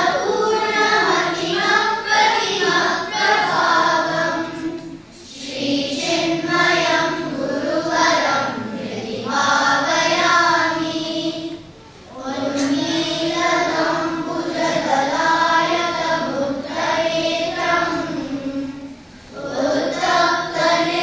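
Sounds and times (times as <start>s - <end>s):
children chanting in unison: 0.0s - 21.0s.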